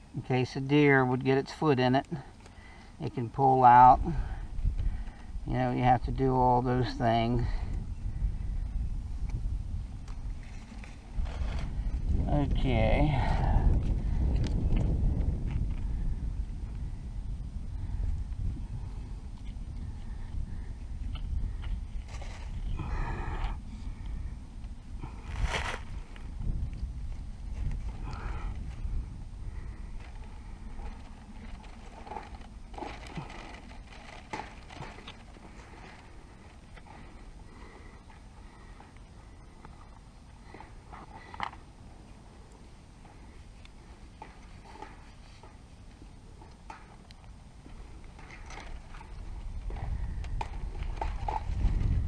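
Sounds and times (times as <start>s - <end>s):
low rumble: 7.4s - 39.9s
rustling dry leaves: 24.9s - 37.9s.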